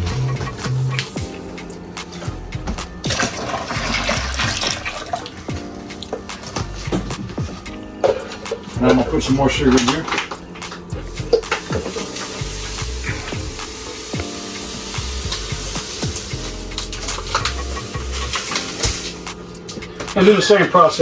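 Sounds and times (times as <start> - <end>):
sugar pouring hiss: 11.0 - 19.4.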